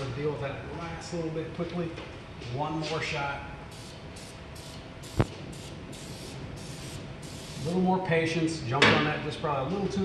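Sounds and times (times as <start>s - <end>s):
aerosol spray hissing: 3.8s - 7.7s.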